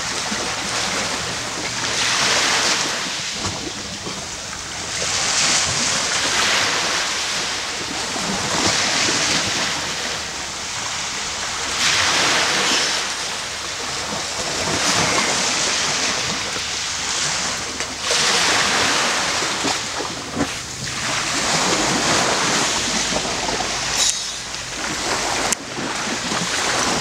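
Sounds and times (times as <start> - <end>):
small waves washing onto sand: 0.0 - 27.0.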